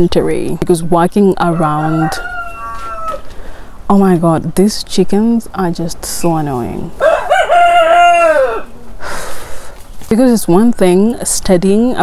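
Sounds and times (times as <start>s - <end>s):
rooster crowing: 1.4s - 3.3s, 7.0s - 8.8s.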